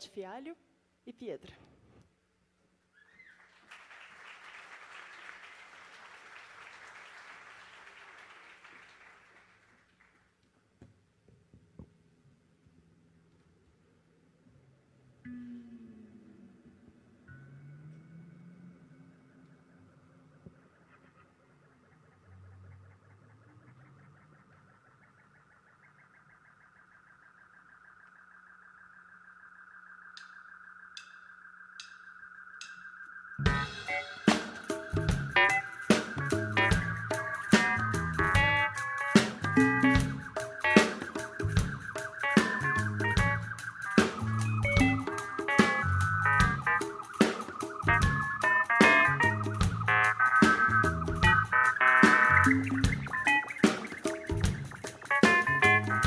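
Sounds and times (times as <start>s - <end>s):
faint audience applause: 3.1s - 10.3s
low steady drone: 15.2s - 26.7s
fast pulsing high tone: 33.4s - 56.0s.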